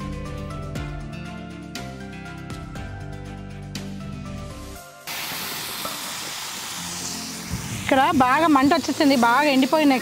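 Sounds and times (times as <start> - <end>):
background music: 0.0 - 10.0
food sizzling in a metal pan: 4.7 - 10.0.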